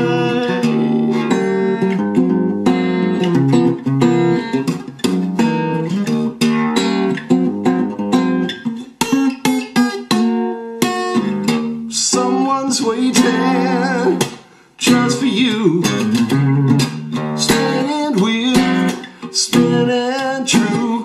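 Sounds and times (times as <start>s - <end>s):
acoustic guitar music: 0.0s - 21.0s.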